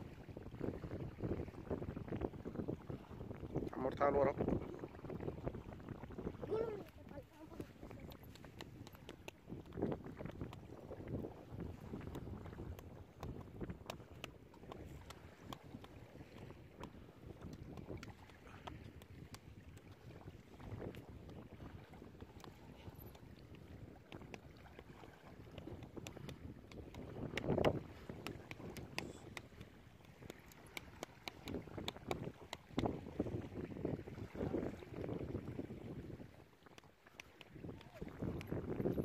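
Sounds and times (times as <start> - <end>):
wind buffeting microphone: 0.0 - 36.6, 37.5 - 39.0.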